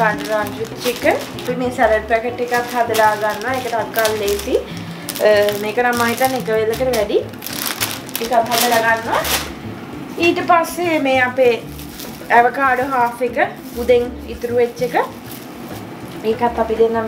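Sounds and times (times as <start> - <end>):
woman talking: 0.0 - 7.3, 8.1 - 9.5, 10.2 - 15.2, 16.2 - 17.0
plastic bag crinkling: 0.0 - 9.6, 11.4 - 16.0.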